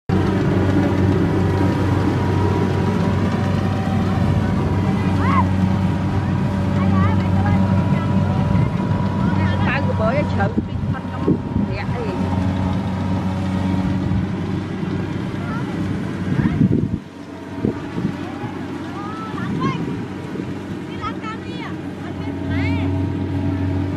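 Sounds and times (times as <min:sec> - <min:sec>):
engine humming steadily: 0:00.0 - 0:23.9.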